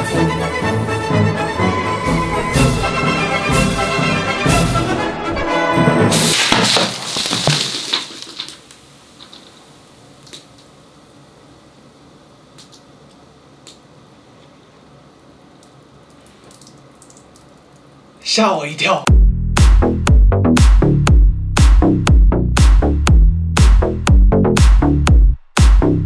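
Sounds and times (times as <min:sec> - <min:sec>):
bottle bursting with hissing gush: 0:06.1 - 0:09.7.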